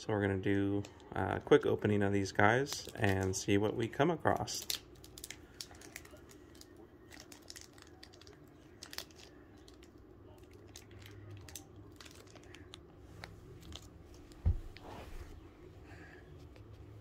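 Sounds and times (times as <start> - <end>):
low steady hum: 0.0 - 17.0
foil wrapper crinkling and tearing: 4.3 - 12.9.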